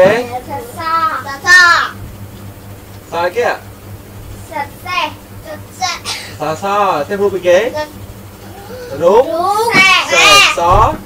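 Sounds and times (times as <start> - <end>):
children's voices reciting: 0.3 - 2.0, 9.3 - 10.8.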